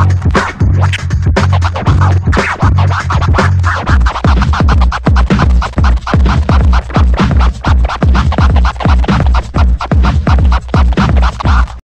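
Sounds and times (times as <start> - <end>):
beat with heavy bass: 0.0 - 11.8
turntable scratching: 0.0 - 11.8.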